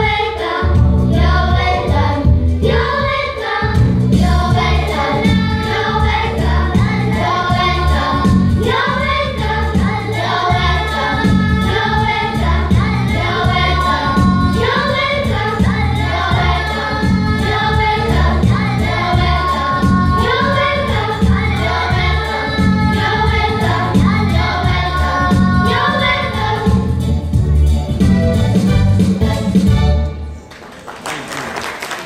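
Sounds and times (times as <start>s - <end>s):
children singing together: 0.0s - 26.9s
instrumental accompaniment with beat: 0.0s - 30.5s.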